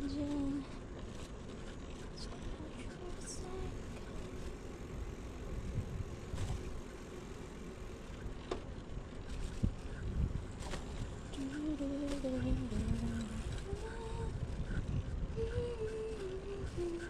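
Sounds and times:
bicycle rolling on paved path: 0:00.0 - 0:17.0
bike clicks and rattles: 0:00.0 - 0:17.0.

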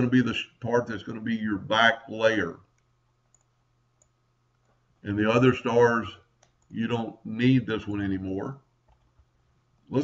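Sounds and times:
faint low hum: 0:00.0 - 0:10.0
computer mouse clicks: 0:02.6 - 0:04.8, 0:06.3 - 0:06.8, 0:08.8 - 0:09.3.

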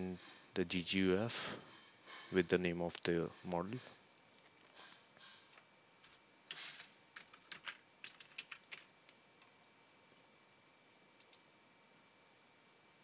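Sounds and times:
computer keyboard typing: 0:07.2 - 0:08.9.

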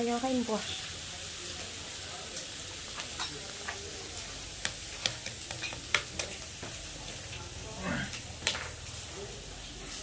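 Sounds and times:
meat sizzling on grill pan: 0:00.0 - 0:10.0
utensils clicking against pan: 0:02.9 - 0:03.9, 0:04.6 - 0:07.4.

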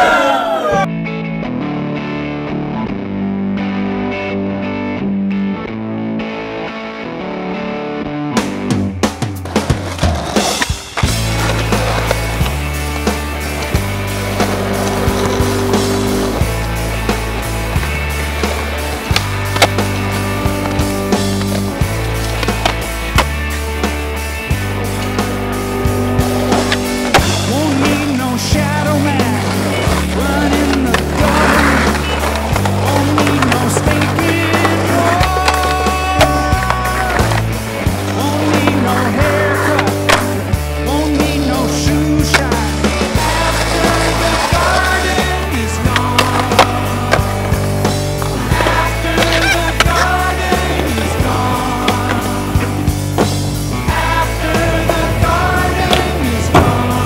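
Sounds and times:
music with bass line: 0:00.8 - 0:57.0
skateboard wheels rolling on pavement: 0:08.5 - 0:57.0
skateboard popping and landing: 0:17.3 - 0:23.4, 0:26.2 - 0:28.1, 0:28.9 - 0:40.4, 0:43.2 - 0:53.5, 0:54.6 - 0:57.0.

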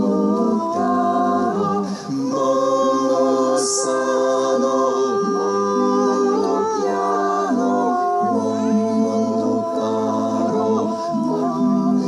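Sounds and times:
unaccompanied choir-like singing: 0:00.0 - 0:12.0.

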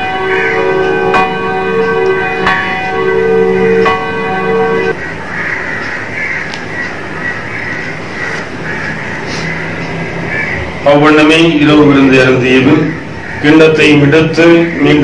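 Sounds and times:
bell tolling: 0:00.0 - 0:05.1.

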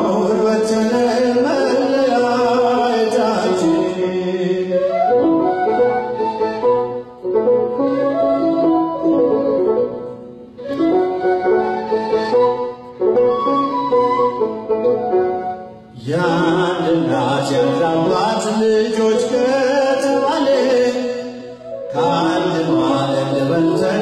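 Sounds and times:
end-blown flute melody: 0:00.0 - 0:24.0.

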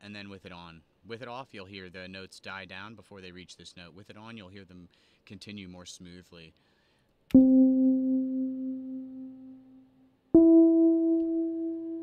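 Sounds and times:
software instrument single notes: 0:07.3 - 0:12.0.

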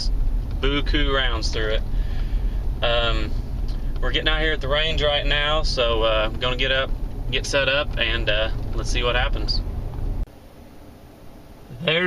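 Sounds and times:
man talking: 0:00.0 - 0:01.8, 0:02.8 - 0:03.3, 0:04.0 - 0:09.6, 0:11.7 - 0:12.0
truck cab rumble: 0:00.0 - 0:12.0.

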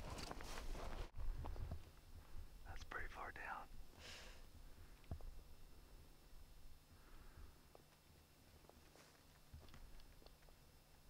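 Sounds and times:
person whispering: 0:02.6 - 0:03.7.

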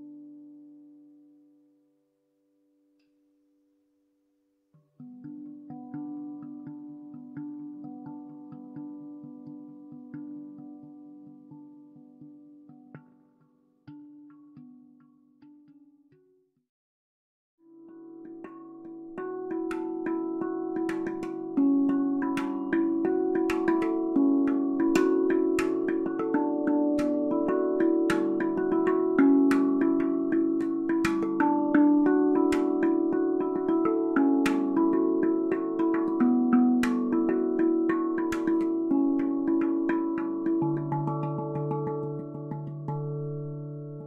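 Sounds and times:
handpan music: 0:00.0 - 0:01.3, 0:05.0 - 0:16.0, 0:17.7 - 0:44.0.

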